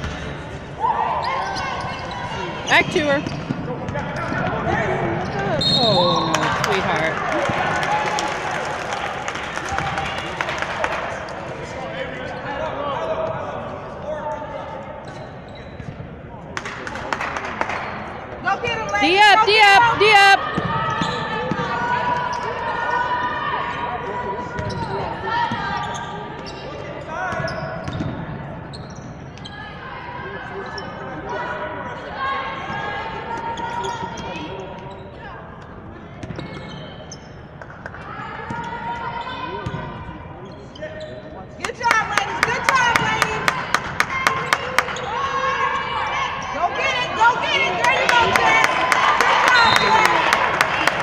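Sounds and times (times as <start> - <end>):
players calling out: 18.6 - 23.4.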